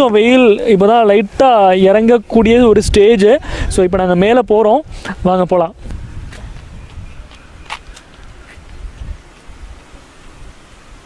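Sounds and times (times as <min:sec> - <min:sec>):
steady hiss: 0:00.0 - 0:06.8, 0:07.4 - 0:11.0
wind rumbling on microphone: 0:00.0 - 0:11.0.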